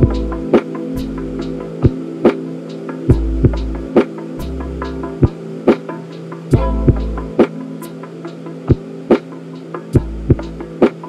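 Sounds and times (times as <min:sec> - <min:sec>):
hazy held chords: 0:00.0 - 0:11.0
slow drum loop: 0:00.0 - 0:11.0
deep bass note: 0:06.6 - 0:07.3.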